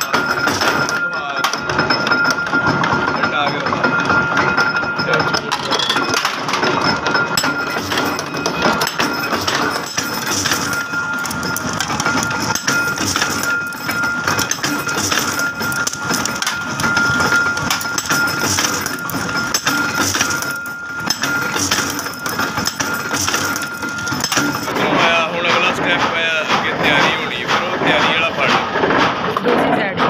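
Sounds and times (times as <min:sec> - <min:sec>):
metallic clatter and clicking: 0:00.0 - 0:30.0
tapping machine high whine: 0:00.0 - 0:30.0.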